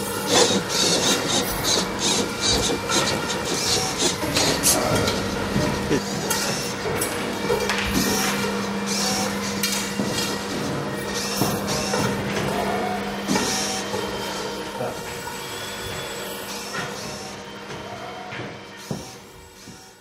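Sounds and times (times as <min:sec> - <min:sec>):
steady low hum: 0:00.0 - 0:15.2
robot motors whirring: 0:00.0 - 0:20.0
pen scratching on paper: 0:00.3 - 0:04.7.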